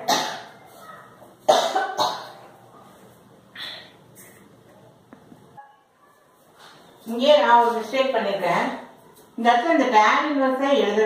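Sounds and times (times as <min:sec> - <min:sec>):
woman coughing: 0:00.0 - 0:00.5, 0:01.5 - 0:02.4.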